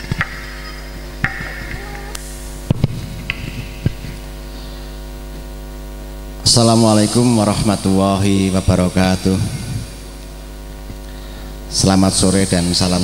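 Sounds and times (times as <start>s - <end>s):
mains hum: 0.0s - 13.0s.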